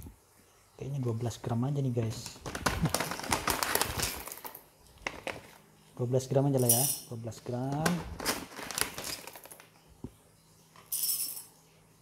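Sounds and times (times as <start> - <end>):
coffee beans rattling against metal: 2.2 - 4.6, 6.6 - 9.7, 10.9 - 11.5.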